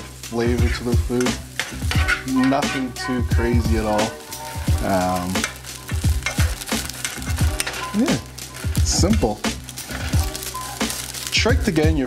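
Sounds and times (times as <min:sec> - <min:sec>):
background music with deep beat: 0:00.0 - 0:12.0
rice sizzling in a saucepan: 0:00.0 - 0:12.0.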